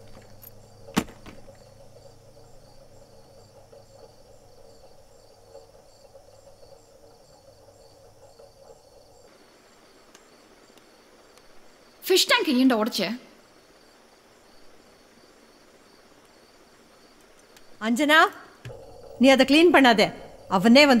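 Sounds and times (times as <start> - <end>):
crickets chirping: 0.0 - 21.0
low hum: 18.4 - 21.0.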